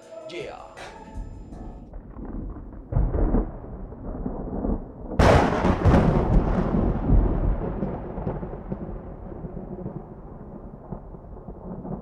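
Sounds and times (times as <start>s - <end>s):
low thunder rumble: 1.4s - 12.0s
loud thunder crack: 1.5s - 12.0s.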